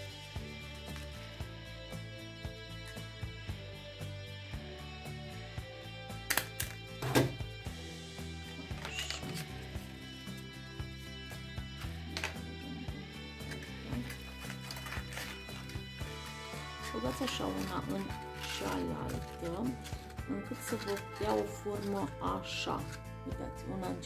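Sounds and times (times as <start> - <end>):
instrumental background music: 0.0 - 24.0.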